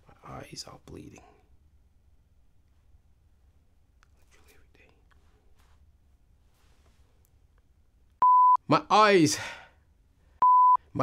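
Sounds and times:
man whispering: 0:00.0 - 0:01.5, 0:04.0 - 0:05.5
low room hum: 0:00.0 - 0:11.0.

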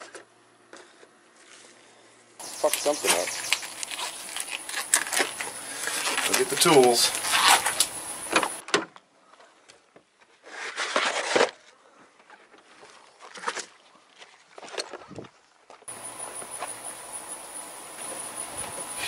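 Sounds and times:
steady outdoor hum: 0:00.0 - 0:09.8, 0:15.1 - 0:19.0.

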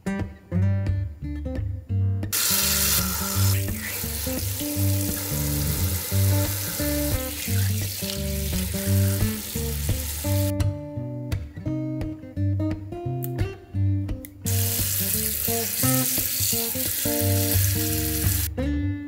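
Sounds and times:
acoustic guitar music: 0:00.0 - 0:19.0
tap spraying water into sink: 0:02.4 - 0:10.5, 0:14.5 - 0:18.5.

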